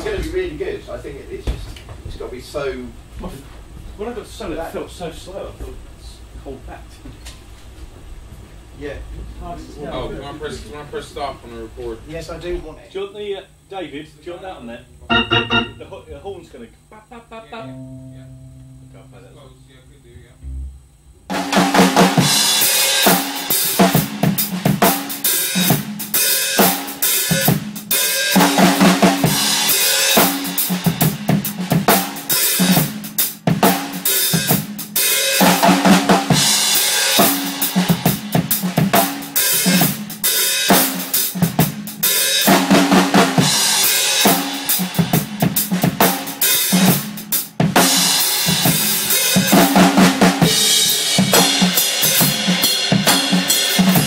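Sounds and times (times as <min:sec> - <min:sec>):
drum kit playing: 0:15.1 - 0:16.0, 0:21.3 - 0:54.0.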